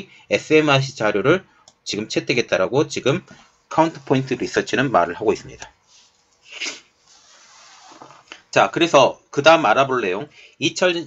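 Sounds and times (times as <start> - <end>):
man sniffing: 6.4 - 7.0.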